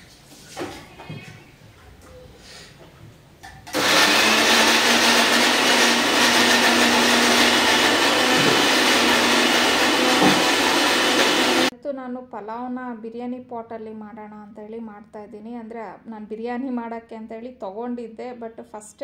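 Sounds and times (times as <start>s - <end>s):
mixer grinder running: 3.7s - 11.7s.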